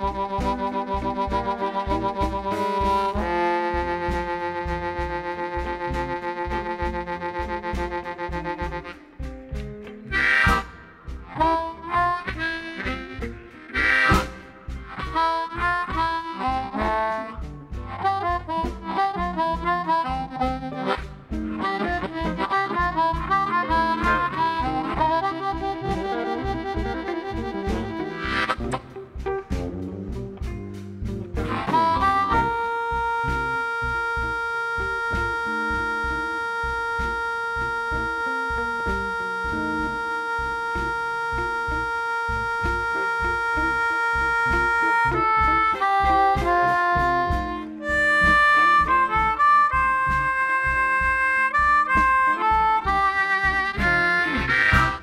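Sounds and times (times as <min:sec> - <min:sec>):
band with drums and bass: 0:00.0 - 0:55.0
blues harmonica soloing: 0:00.0 - 0:55.0.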